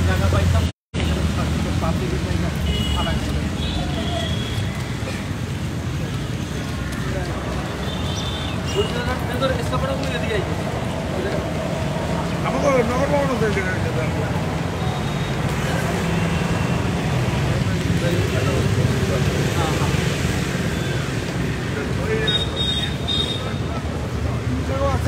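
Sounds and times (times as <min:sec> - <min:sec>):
indistinct voices talking: 0:00.0 - 0:25.0
road traffic rumble: 0:00.0 - 0:25.0.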